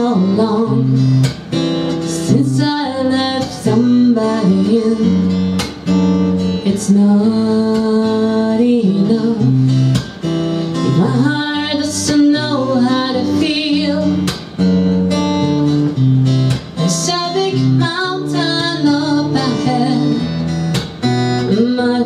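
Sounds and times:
woman singing: 0:00.0 - 0:05.7, 0:06.4 - 0:14.4, 0:16.8 - 0:20.4, 0:21.4 - 0:22.0
strummed acoustic guitar: 0:00.0 - 0:22.0.

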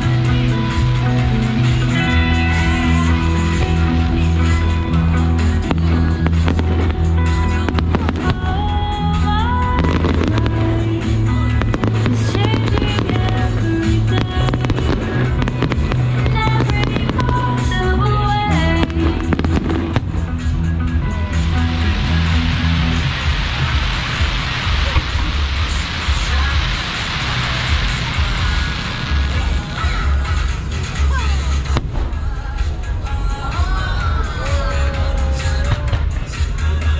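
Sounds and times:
deep rumble: 0:00.0 - 0:36.9
fireworks crackling and popping: 0:00.0 - 0:36.9
loud music: 0:00.0 - 0:36.9.

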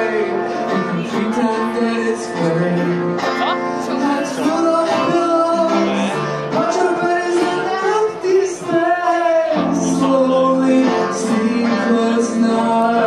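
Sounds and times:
electric guitar strummed chords: 0:00.0 - 0:13.0
man singing: 0:00.0 - 0:13.0.

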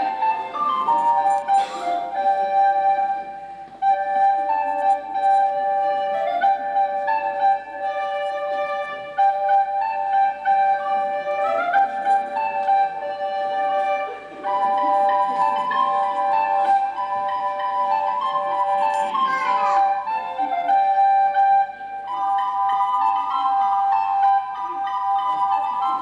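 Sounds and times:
flute solo melody: 0:00.0 - 0:26.0.

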